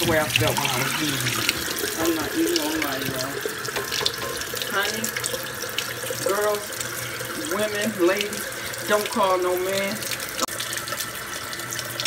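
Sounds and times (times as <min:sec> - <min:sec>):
tap water running into sink: 0:00.0 - 0:12.0.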